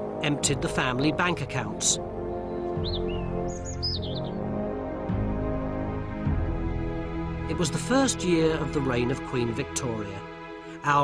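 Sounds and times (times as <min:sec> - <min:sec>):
music with sustained low notes: 0:00.0 - 0:11.0
high bird chirps: 0:02.4 - 0:04.4.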